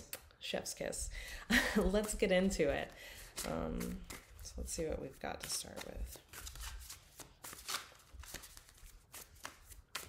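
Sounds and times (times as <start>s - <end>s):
cards being shuffled: 3.3s - 10.0s.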